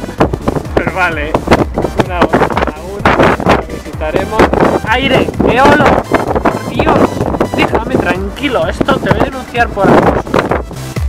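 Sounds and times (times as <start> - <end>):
low car rumble: 0.0 - 11.0
wind buffeting microphone: 0.0 - 11.0.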